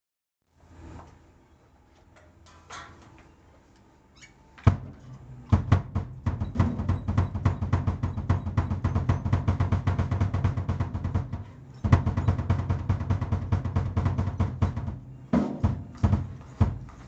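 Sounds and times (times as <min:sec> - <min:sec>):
snare drum hits: 0:05.5 - 0:16.8
double-kick bass drum: 0:05.5 - 0:17.0.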